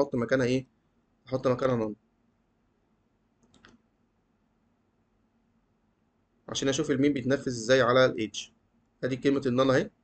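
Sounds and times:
computer mouse clicks: 3.4 - 3.9.

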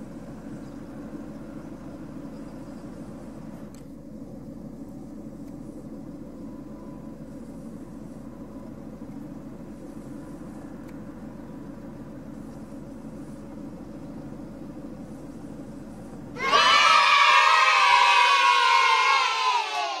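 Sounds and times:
low outdoor rumble: 0.0 - 20.0
children cheering and shouting: 16.4 - 20.0.

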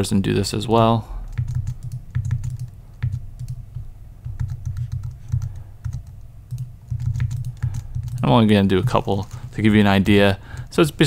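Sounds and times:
computer mouse clicks: 1.3 - 8.2
keyboard keys clicking: 1.3 - 8.3.

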